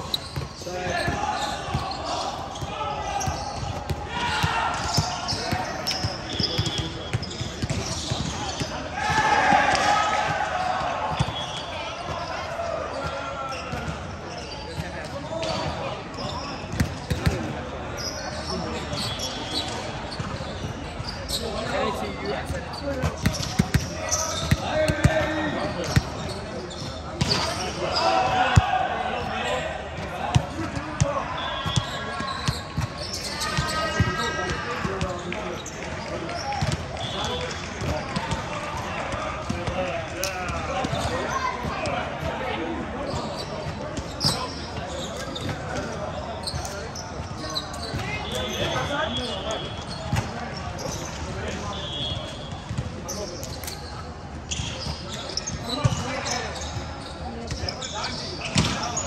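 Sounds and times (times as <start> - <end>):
players' voices calling and chatting: 0.0 - 59.0.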